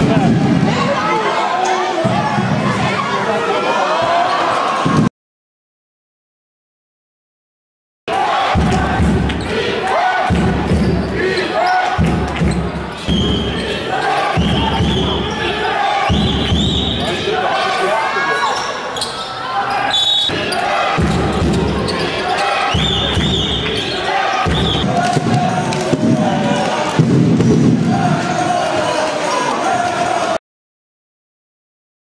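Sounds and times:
voices echoing in hall: 0.0s - 5.0s, 8.1s - 30.4s
sneakers squeaking: 10.7s - 24.9s.

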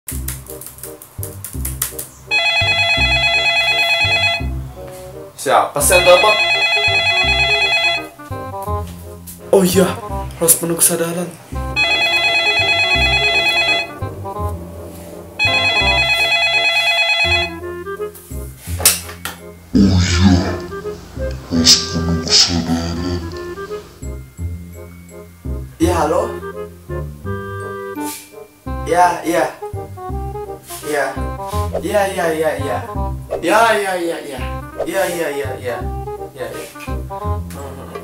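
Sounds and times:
upbeat music with plucked bass: 0.1s - 11.0s, 11.6s - 33.8s, 34.4s - 38.0s
telephone ringing: 2.3s - 4.6s, 5.9s - 8.3s, 11.8s - 14.1s, 15.4s - 17.8s.

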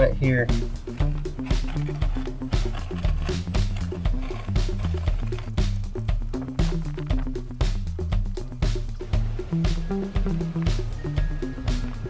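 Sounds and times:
background music with beat: 0.0s - 12.0s
bass line: 0.0s - 12.0s.

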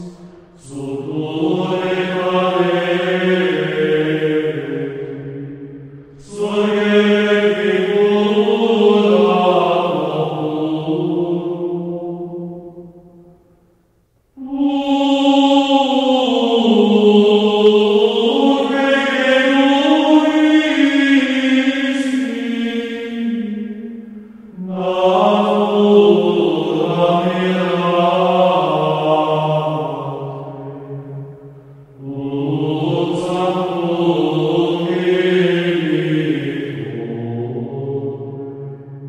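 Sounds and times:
chant-style singing: 0.0s - 13.3s, 14.4s - 39.0s.

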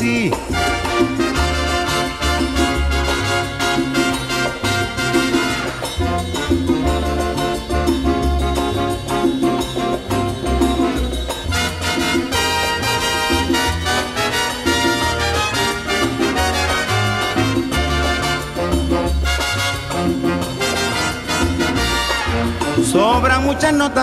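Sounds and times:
big band samba music: 0.0s - 24.0s.

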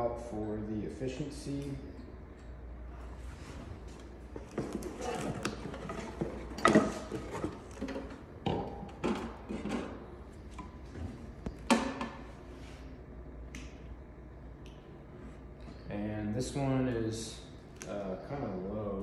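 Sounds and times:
knocks and clunks of handling: 3.9s - 12.3s.

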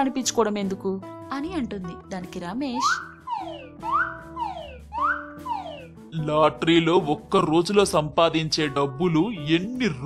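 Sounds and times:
rising and falling sliding note: 3.2s - 6.0s.

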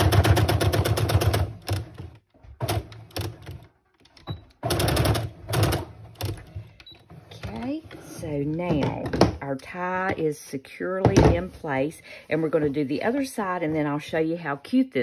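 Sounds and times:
sewing machine stitching: 0.0s - 3.7s, 4.3s - 6.6s.

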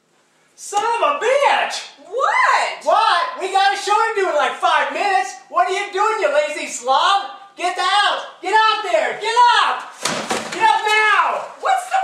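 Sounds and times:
person shouting: 1.2s - 3.4s
trash spilling crash: 9.9s - 10.9s
wastebasket thud on desk: 10.0s - 10.9s.

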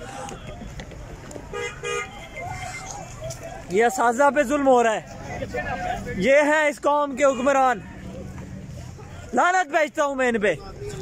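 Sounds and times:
vehicle horn honking: 1.5s - 2.9s.

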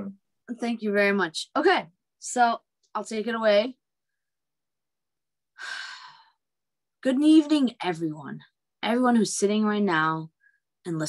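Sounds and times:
woman breathing: 5.6s - 6.5s.

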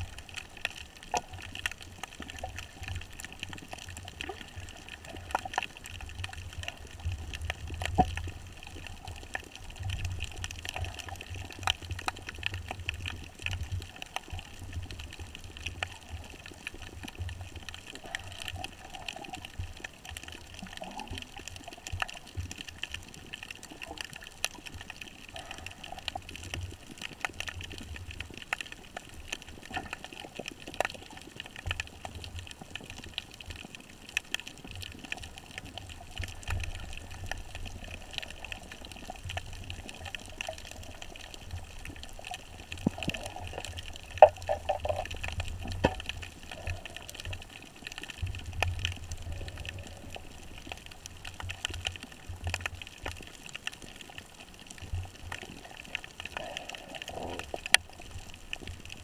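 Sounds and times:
faint clicks and crackles: 0.0s - 59.0s
muffled underwater hiss: 0.0s - 59.0s.

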